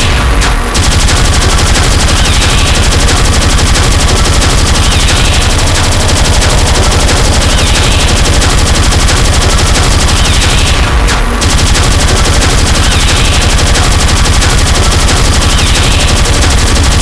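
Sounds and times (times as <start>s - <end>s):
fast distorted kick drums: 0.0s - 17.0s.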